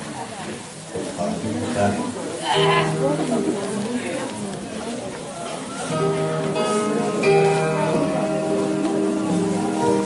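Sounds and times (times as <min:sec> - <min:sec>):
chatter in a hall: 0:00.0 - 0:10.0.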